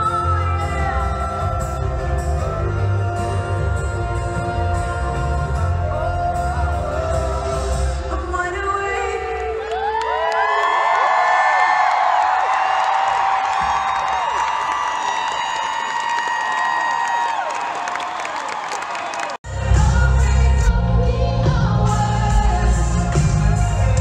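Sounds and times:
live pop band music: 0.0 - 9.7, 19.5 - 24.0
crowd cheering and whooping: 9.5 - 19.4.

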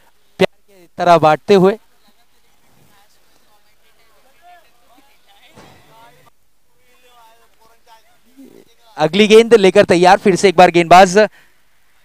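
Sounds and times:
faint chatter of spectators: 1.7 - 9.0.

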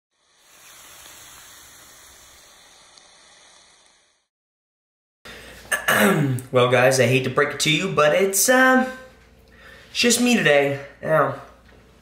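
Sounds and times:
hissing sound effect: 0.1 - 4.3.

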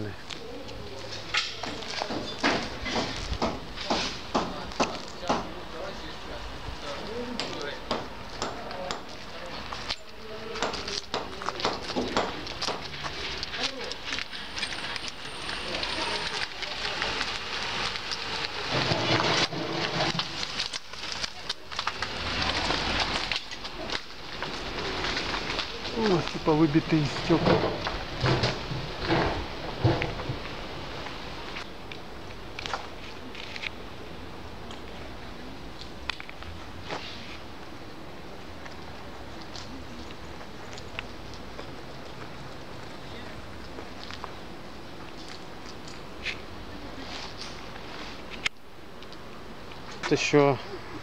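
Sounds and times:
people talking: 0.0 - 2.4, 3.7 - 14.2, 15.3 - 17.4, 25.7 - 27.8, 50.0 - 51.0
footsteps crunching on broken glass: 6.9 - 27.9
clicks and scrapes: 17.2 - 26.4, 32.6 - 33.8.

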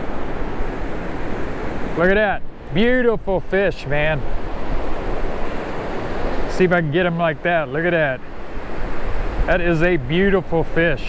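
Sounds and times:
wind rumbling on microphone: 0.0 - 3.4, 8.1 - 11.0
surf washing up the beach: 0.0 - 11.0.

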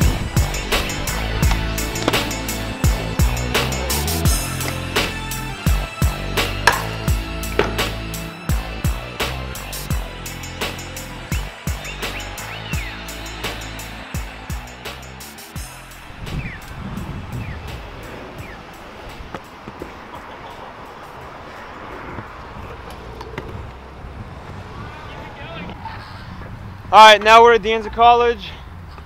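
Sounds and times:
music with a beat: 0.0 - 18.6
scooter wheels rolling on asphalt: 16.0 - 27.4.

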